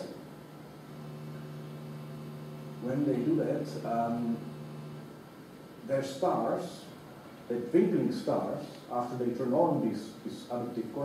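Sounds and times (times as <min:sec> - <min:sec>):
faint hiss: 0:00.0 - 0:11.0
low hum: 0:00.7 - 0:05.1.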